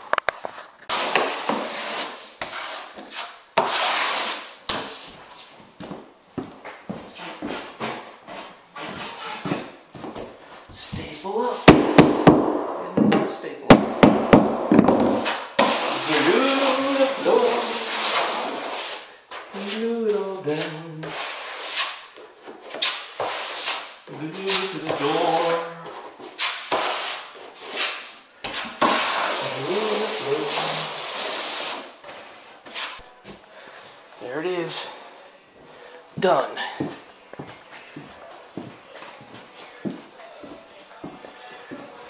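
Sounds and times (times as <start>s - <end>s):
trowel scraping adhesive: 0.9s - 5.0s, 15.0s - 19.8s, 26.3s - 31.9s
hammer strikes on floor: 11.6s - 15.8s.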